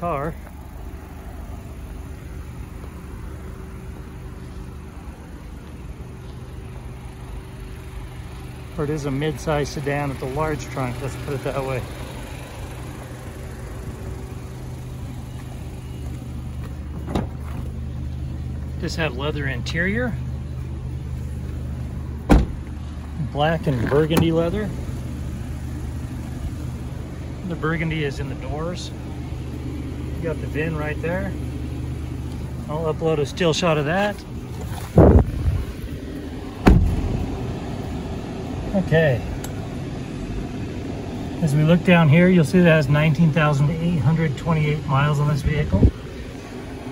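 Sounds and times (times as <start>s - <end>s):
car engine idling: 0.0s - 46.9s
car door shutting: 16.6s - 17.7s, 22.2s - 22.7s, 23.7s - 24.4s, 36.6s - 37.4s.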